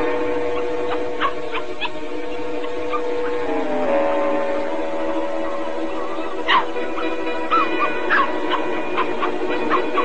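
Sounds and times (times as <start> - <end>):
film music with held notes: 0.0 - 10.0
cartoon puppies yipping and whimpering: 6.4 - 10.0.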